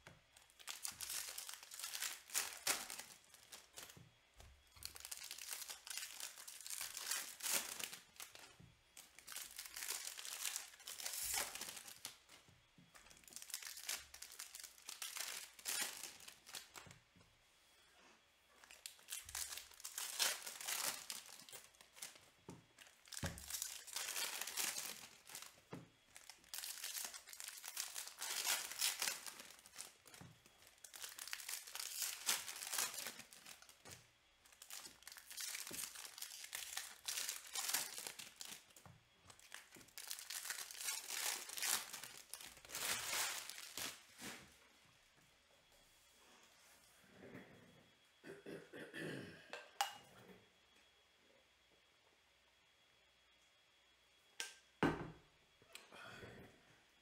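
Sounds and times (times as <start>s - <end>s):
foil wrappers tearing and crinkling: 0.4s - 4.0s, 4.7s - 12.4s, 13.0s - 16.9s, 18.6s - 44.4s.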